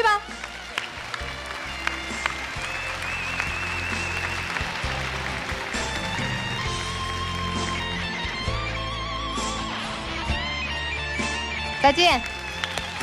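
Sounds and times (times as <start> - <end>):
audience applauding: 0.0 - 9.0, 12.0 - 13.0
background music melody: 0.0 - 13.0.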